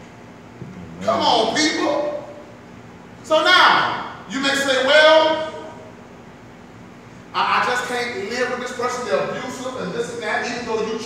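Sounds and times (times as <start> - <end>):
large hall background: 0.0 - 11.0.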